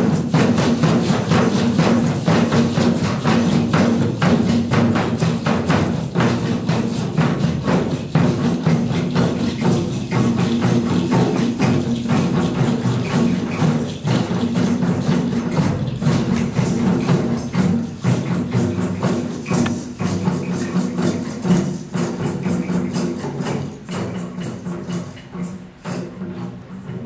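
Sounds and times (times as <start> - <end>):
drum circle playing: 0.0 - 27.0.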